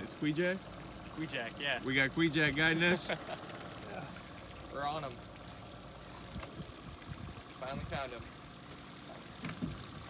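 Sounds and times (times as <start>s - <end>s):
river water washing: 0.0s - 10.0s
wind: 0.0s - 10.0s.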